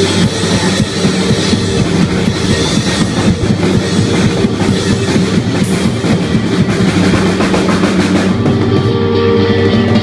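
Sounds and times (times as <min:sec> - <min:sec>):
blues-rock band playing loudly: 0:00.0 - 0:10.0
drum kit rapid strokes: 0:00.0 - 0:10.0
electric guitar: 0:00.0 - 0:10.0.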